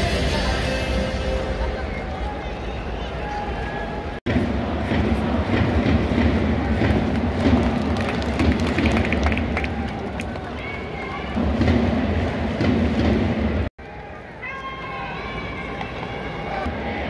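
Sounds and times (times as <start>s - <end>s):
crowd chanting: 16.5s - 17.0s.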